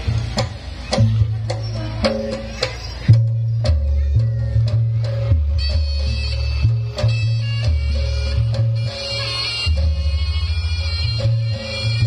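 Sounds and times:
drum strikes: 0:00.0 - 0:12.0
low bass line: 0:00.0 - 0:12.0
high held melody: 0:01.5 - 0:12.0.

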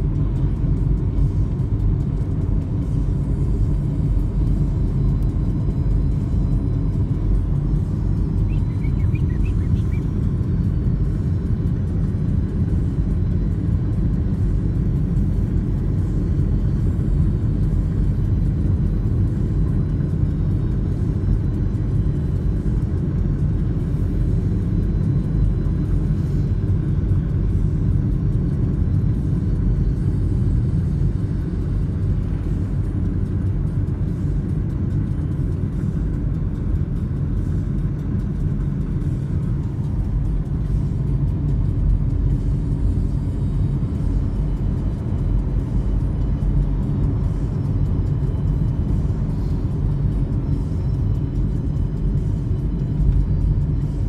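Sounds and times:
car road and engine rumble: 0:00.0 - 0:54.0.

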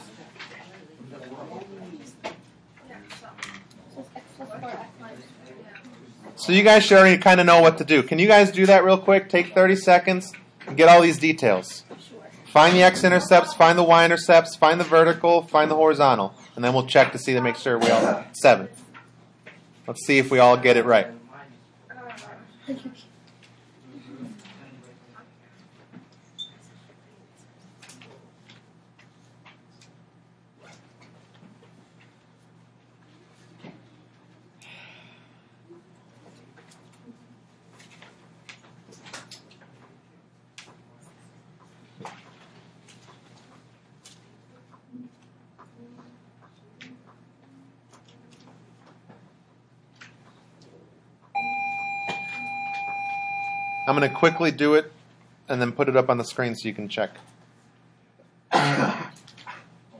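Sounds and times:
steady electronic beep tone: 0:51.4 - 0:54.6.

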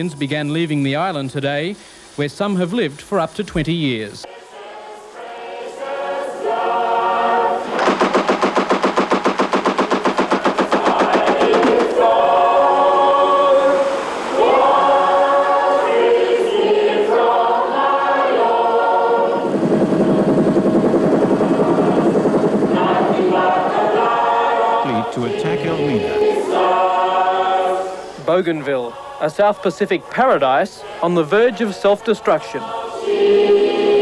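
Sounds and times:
voices singing held notes: 0:04.1 - 0:34.0
fast even rattle: 0:07.8 - 0:12.0.

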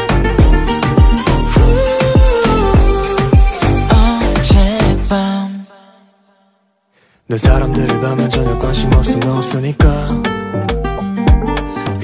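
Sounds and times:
pop backing music: 0:00.0 - 0:05.7, 0:07.3 - 0:12.0.

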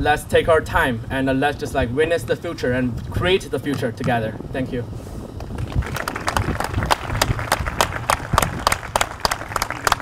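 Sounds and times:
crowd applauding: 0:05.4 - 0:10.0.

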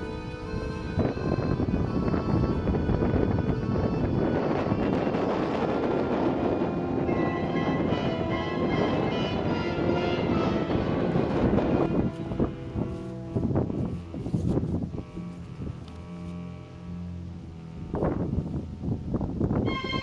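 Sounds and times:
background music: 0:00.0 - 0:14.1, 0:19.6 - 0:20.0
wind buffeting microphone: 0:00.0 - 0:20.0.

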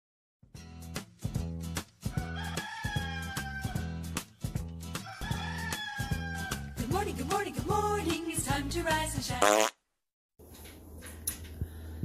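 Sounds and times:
background music with steady beat: 0:00.6 - 0:09.7
rooster crowing: 0:02.1 - 0:04.0, 0:05.0 - 0:06.8.

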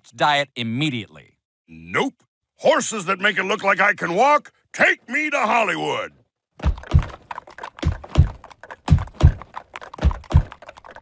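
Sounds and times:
heavy cartoon thuds: 0:06.6 - 0:07.2, 0:07.8 - 0:10.5.

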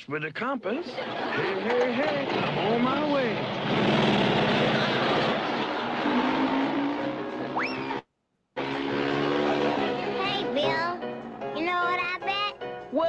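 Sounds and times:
cartoon motorbike engine sputtering: 0:01.7 - 0:08.0, 0:08.6 - 0:10.5
rising whistle: 0:06.0 - 0:08.0
background music: 0:08.6 - 0:13.0.

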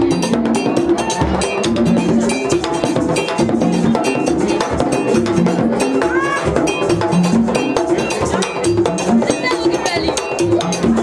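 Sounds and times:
hand drums: 0:00.0 - 0:11.0.

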